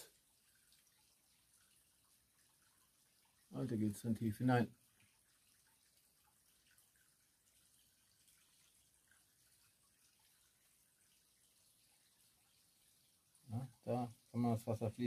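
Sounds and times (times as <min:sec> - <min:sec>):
faint trickle of water: 0:00.0 - 0:15.0.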